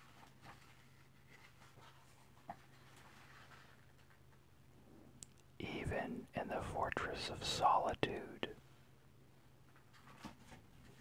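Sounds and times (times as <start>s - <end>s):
person whispering: 5.6s - 8.6s.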